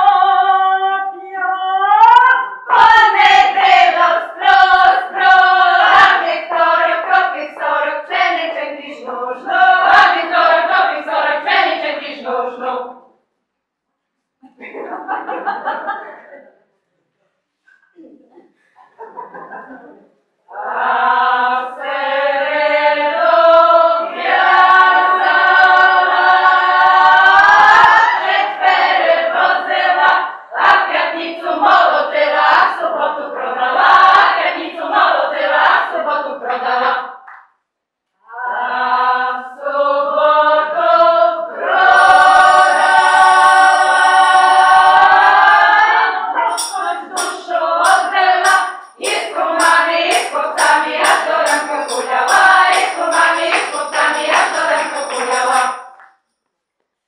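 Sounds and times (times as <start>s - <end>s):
women's choir singing unaccompanied: 0.0s - 13.1s, 20.5s - 37.2s, 38.2s - 56.0s.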